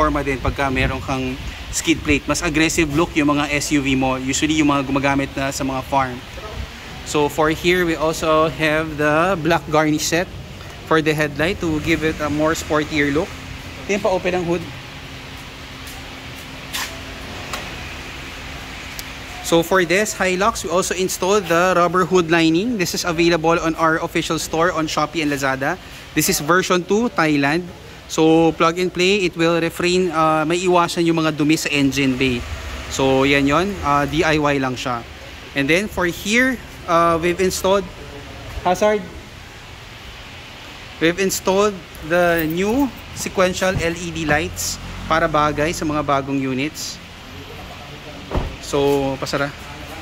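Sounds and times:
outdoor background hiss: 0.0 - 50.0.

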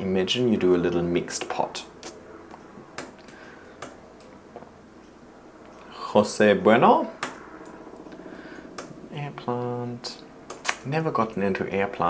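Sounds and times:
light sharp clicks: 10.5 - 10.9.

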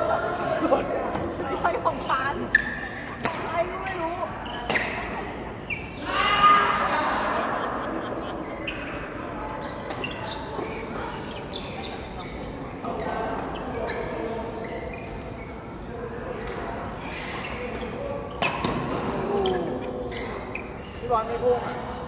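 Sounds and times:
shoe squeaks on court: 2.0 - 6.1, 8.4 - 21.3.

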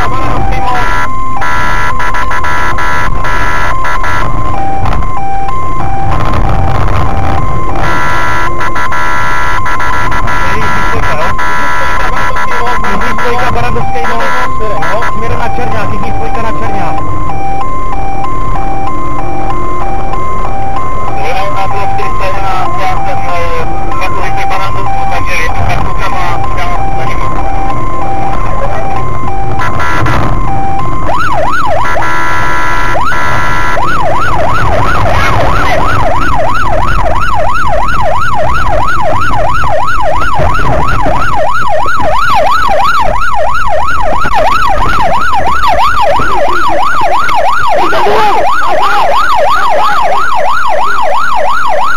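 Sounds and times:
police siren: 0.0 - 51.9
road and engine noise: 0.0 - 51.9.

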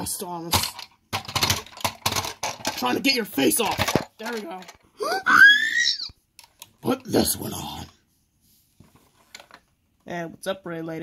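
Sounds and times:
person squealing: 5.0 - 6.2.

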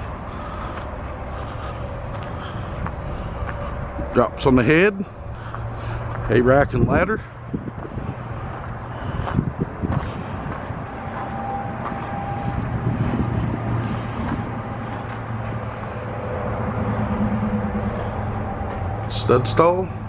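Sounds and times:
low engine-like hum: 0.0 - 20.0.

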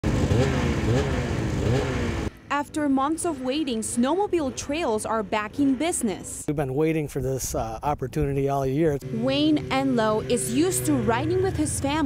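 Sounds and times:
snowmobile engines running: 0.0 - 12.0
voices: 2.5 - 12.0.

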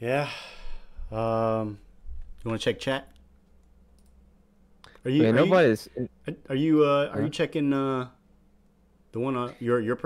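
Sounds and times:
low steady hum: 0.0 - 10.0
faint clicks: 2.2 - 4.2.

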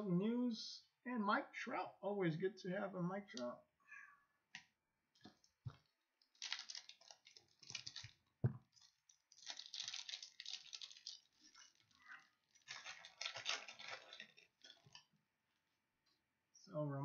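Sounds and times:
foil wrapper crinkling and tearing: 5.8 - 15.1.

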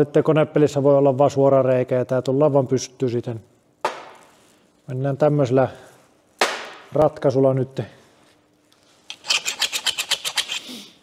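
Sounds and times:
metal pipe rasping scrapes: 9.1 - 10.8.

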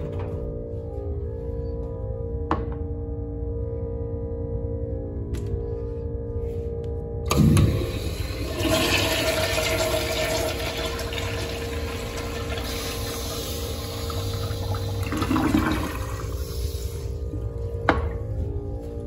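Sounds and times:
flush valve clunk: 7.3 - 15.9
water rushing through toilet bowl: 7.3 - 16.5.

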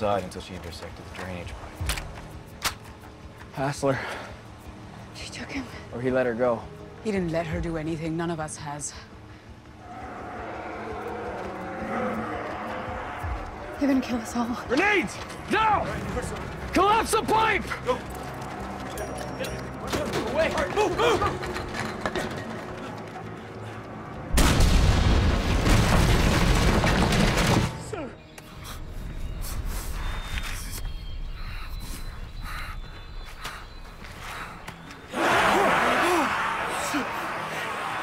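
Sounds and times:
low tense music: 0.0 - 38.0
grenade explosion: 24.3 - 27.8
loud scream: 35.1 - 38.0
people shouting: 35.1 - 38.0.

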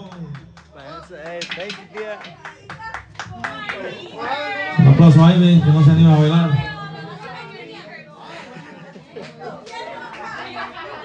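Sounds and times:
people clapping: 0.0 - 4.8, 7.1 - 11.0
voices talking and calling out: 0.0 - 11.0.

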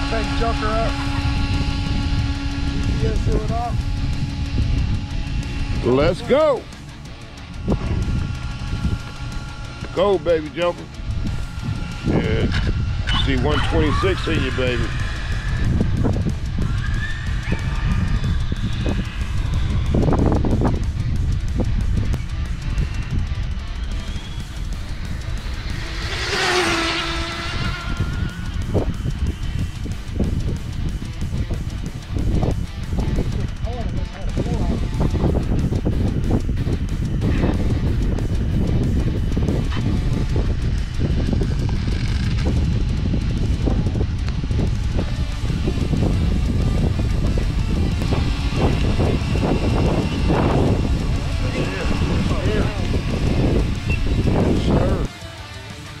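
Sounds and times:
wind buffeting microphone: 0.0 - 55.1
whine falling in pitch: 0.0 - 56.0.

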